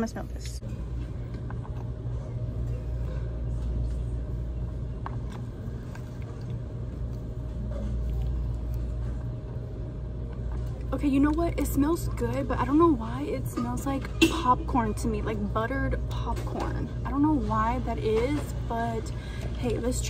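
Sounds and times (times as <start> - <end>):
faint steady hum: 0.0 - 20.0
low rumble of shop noise: 0.0 - 20.0.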